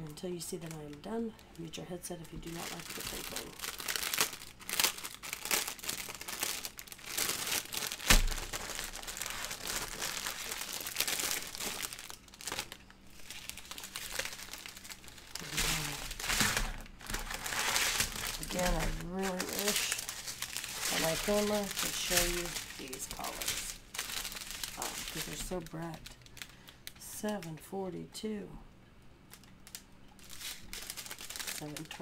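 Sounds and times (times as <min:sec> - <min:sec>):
plastic packaging crinkling: 0:00.0 - 0:27.5, 0:29.2 - 0:32.0.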